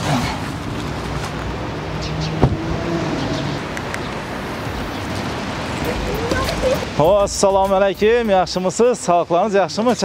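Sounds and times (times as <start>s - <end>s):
outdoor background noise: 0.0s - 10.0s
car door shutting: 2.3s - 2.8s.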